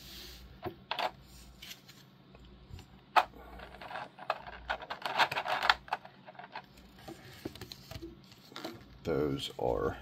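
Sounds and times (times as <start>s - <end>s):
plastic parts clicking: 3.2s - 6.7s.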